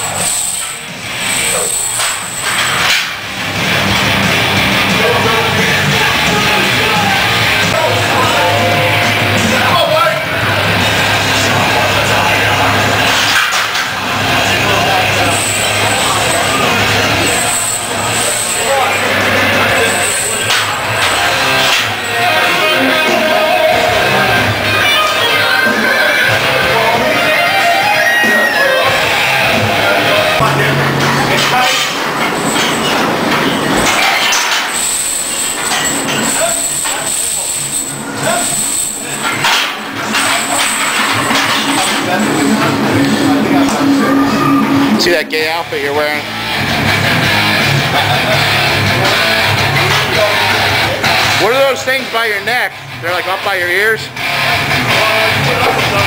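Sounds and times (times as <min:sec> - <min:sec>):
voices: 0:00.0 - 0:56.0
people shouting: 0:05.0 - 0:10.2, 0:14.6 - 0:30.5, 0:39.3 - 0:45.0.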